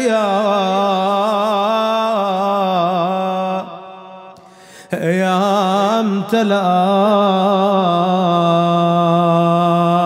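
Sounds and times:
man chanting: 0:00.0 - 0:10.0
sharp breath: 0:04.4 - 0:05.0.

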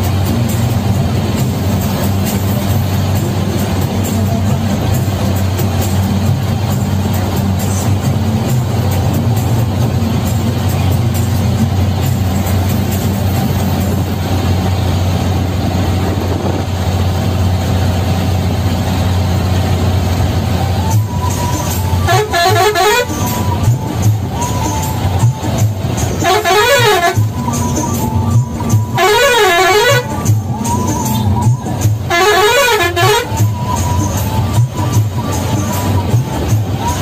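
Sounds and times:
diesel bus engine droning: 0:00.0 - 0:37.0
multi-tone bus horn: 0:00.0 - 0:37.0.

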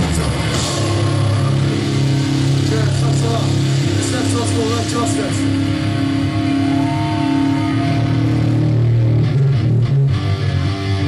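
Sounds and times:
bass guitar: 0:00.0 - 0:11.0
distorted electric guitar chord: 0:00.0 - 0:11.0.

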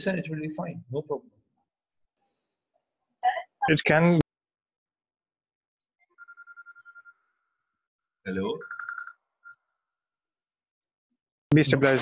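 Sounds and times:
electronic phone ringtone trilling: 0:06.0 - 0:07.7, 0:08.4 - 0:09.9
person speaking: 0:11.5 - 0:12.0.

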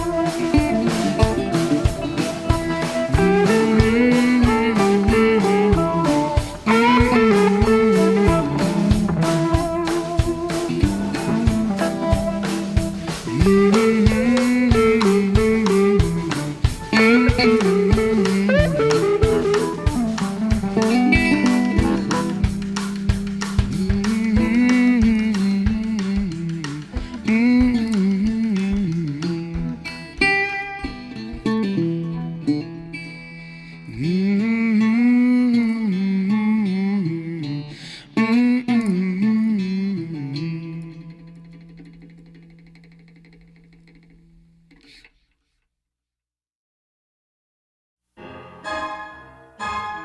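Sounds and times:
steady drum beat: 0:00.0 - 0:31.6
electric guitar notes: 0:00.0 - 0:45.0, 0:48.2 - 0:50.0.

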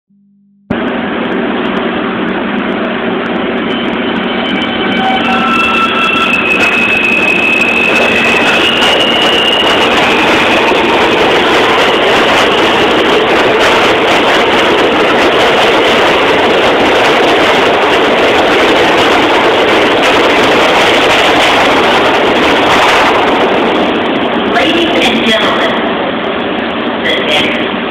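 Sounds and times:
subway train propulsion whine: 0:00.7 - 0:27.9
wheels rumbling on rail: 0:00.7 - 0:27.9.

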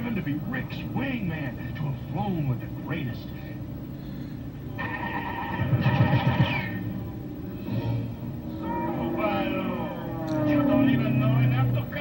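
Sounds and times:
cartoon music from television speaker: 0:04.7 - 0:08.6.

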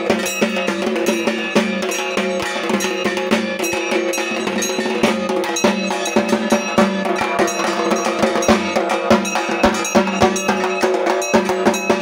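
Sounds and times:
drums beaten with sticks: 0:00.0 - 0:12.0.

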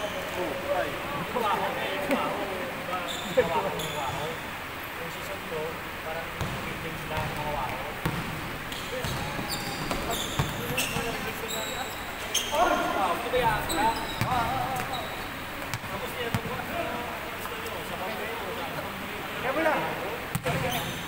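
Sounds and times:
sneaker squeaks: 0:00.0 - 0:00.4, 0:03.0 - 0:04.4, 0:08.0 - 0:15.8, 0:20.3 - 0:21.0
basketball bouncing on court floor: 0:06.4 - 0:11.3, 0:14.0 - 0:16.6, 0:20.3 - 0:20.9.

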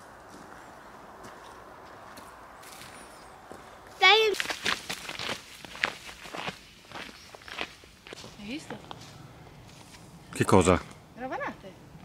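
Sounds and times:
footsteps on stony dirt trail: 0:00.1 - 0:10.0.

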